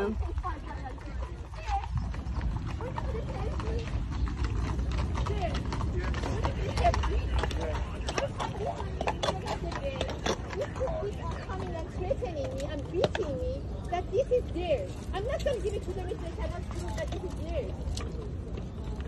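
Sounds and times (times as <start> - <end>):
hooves clip-clopping on asphalt: 0.0 - 19.0
rolling bike noise: 0.0 - 19.0.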